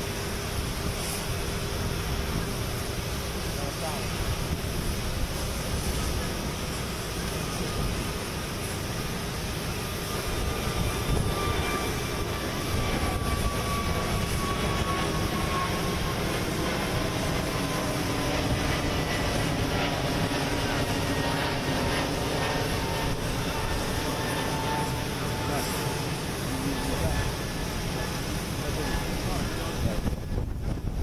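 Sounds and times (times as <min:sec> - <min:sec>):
jet engine with faint whine: 0:00.0 - 0:31.0.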